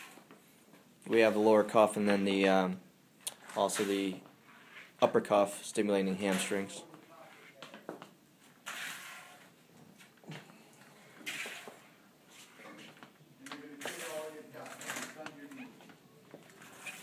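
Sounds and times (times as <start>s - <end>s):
wheeled walker scraping: 0.0s - 0.4s, 3.3s - 5.1s, 6.2s - 7.7s, 8.4s - 10.2s, 10.8s - 17.0s.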